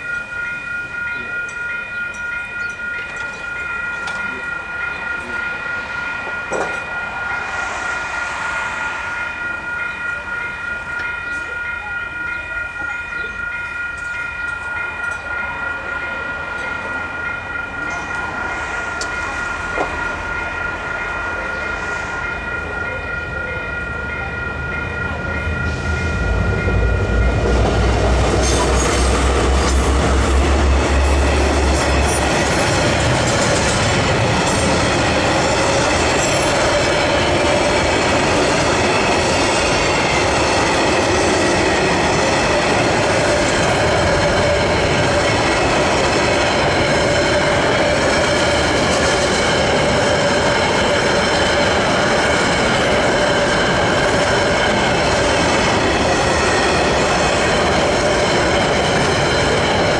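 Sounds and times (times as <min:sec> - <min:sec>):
train engine rumble: 0:00.0 - 0:59.9.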